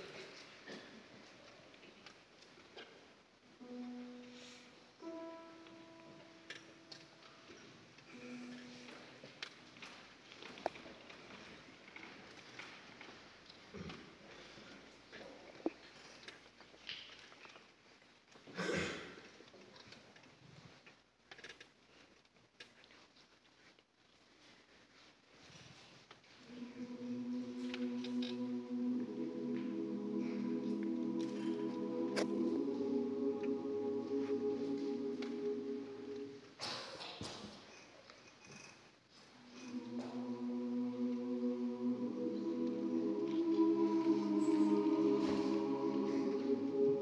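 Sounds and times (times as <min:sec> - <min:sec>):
grand piano single notes: 0:03.6 - 0:07.5.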